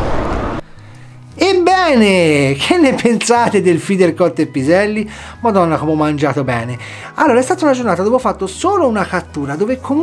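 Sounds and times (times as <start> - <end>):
man speaking: 1.4 - 10.0.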